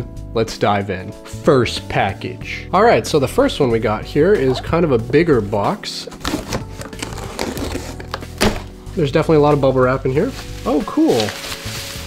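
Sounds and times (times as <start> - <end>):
quiet background music: 0.0 - 12.0
cardboard box being opened: 6.1 - 8.7.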